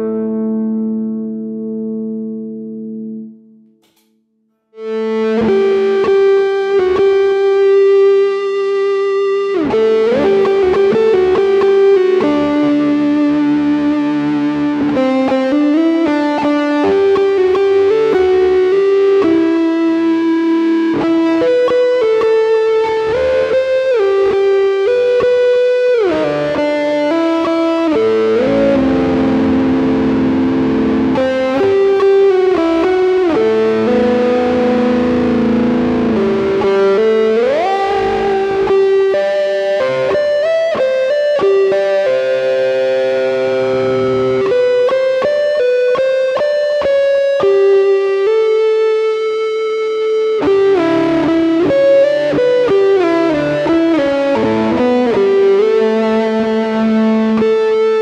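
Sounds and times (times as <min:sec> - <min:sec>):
electric guitar solo with delay: 0:00.0 - 0:03.4, 0:04.8 - 0:58.0.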